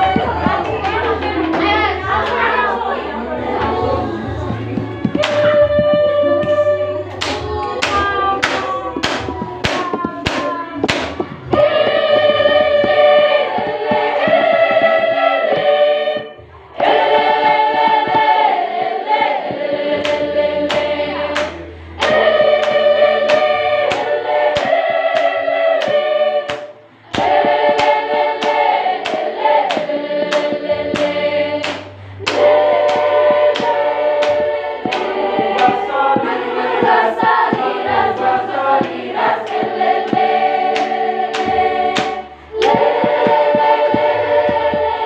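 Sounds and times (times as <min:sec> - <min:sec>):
hand claps keeping a beat: 0:00.0 - 0:02.6, 0:03.6 - 0:45.0
women singing softly: 0:00.0 - 0:45.0.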